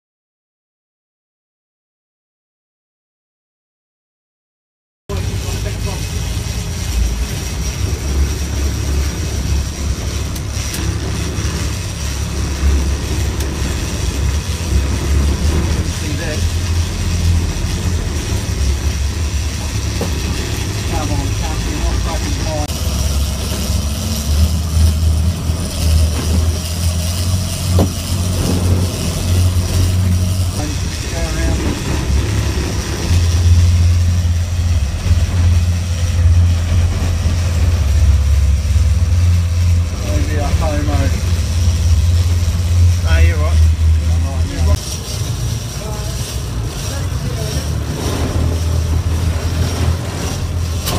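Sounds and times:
boat engines rumbling: 5.1s - 50.9s.

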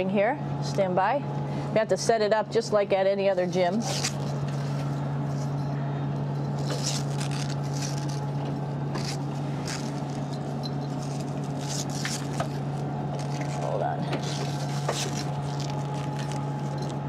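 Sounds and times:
ventilation hum and air noise: 0.0s - 17.0s.

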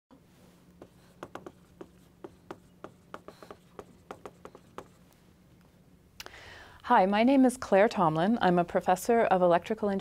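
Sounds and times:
faint steady hum: 0.1s - 10.0s
marker writing on whiteboard: 0.8s - 5.2s.

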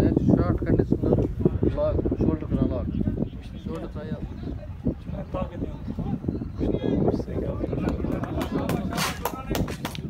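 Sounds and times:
people talking close: 0.0s - 10.0s.

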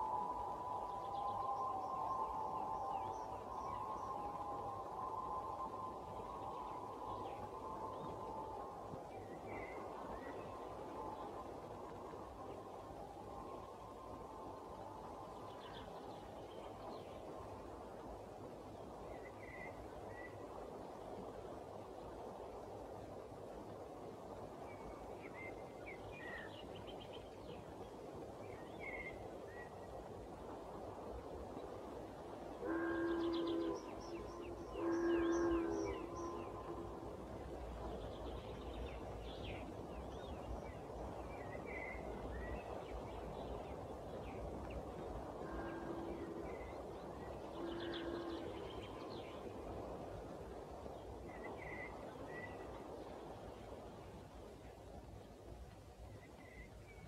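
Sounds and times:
distant horn blasts: 32.6s - 37.0s, 47.6s - 48.6s.

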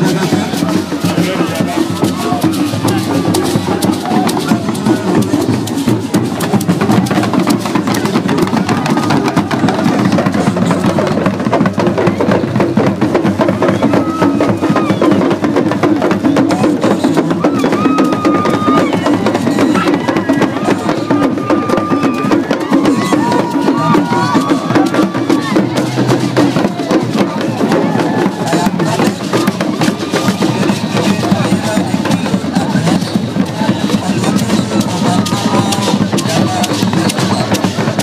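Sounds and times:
crowd voices: 0.0s - 38.0s
talking drums and barrel drum: 0.0s - 38.0s.

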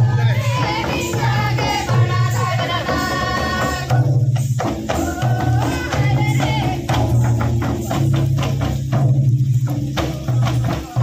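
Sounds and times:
barrel drums beating dance rhythm: 0.0s - 11.0s.

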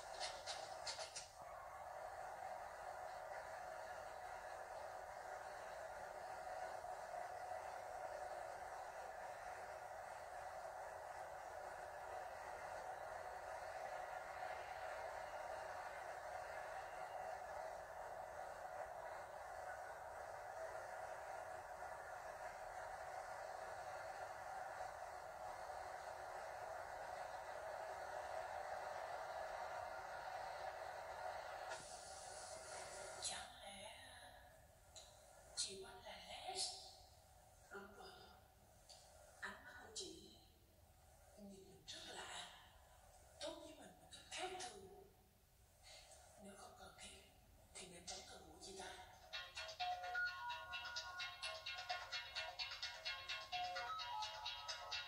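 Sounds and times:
faint background hiss: 0.0s - 54.8s.

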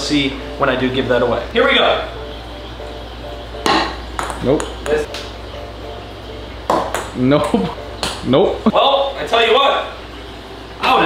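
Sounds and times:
faint background music: 0.0s - 11.0s
ping-pong ball knock: 3.6s - 5.3s, 6.7s - 8.2s.

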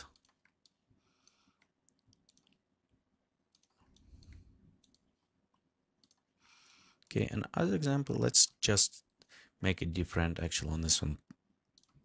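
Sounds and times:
computer mouse clicks: 0.1s - 2.6s, 3.5s - 6.3s, 11.2s - 12.0s.

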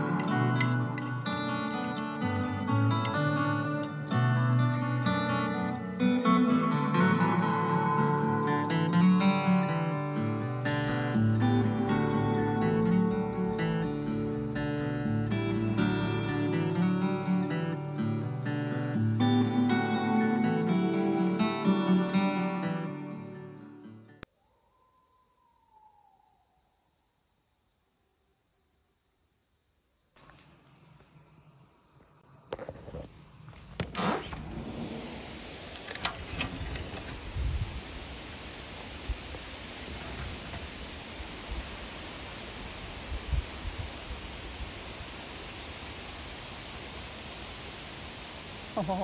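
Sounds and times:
steady outdoor hiss: 0.0s - 49.0s.

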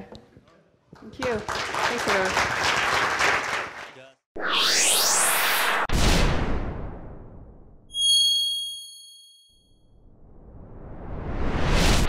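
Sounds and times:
whoosh: 4.4s - 7.6s, 10.1s - 12.0s.

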